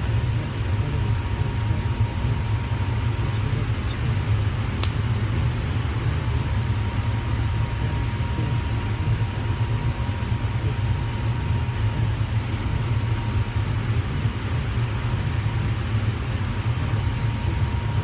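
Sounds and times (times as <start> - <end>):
faint high hum: 0.0 - 18.0
steady low rumble: 0.0 - 18.0.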